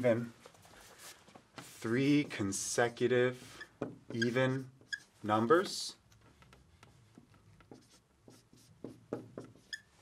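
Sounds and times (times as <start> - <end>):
marker writing on a whiteboard: 1.0 - 2.4, 3.4 - 5.2, 6.2 - 10.0.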